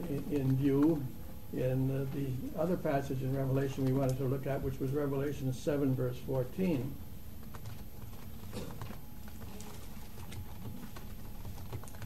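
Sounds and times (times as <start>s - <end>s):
room hiss: 0.0s - 7.4s.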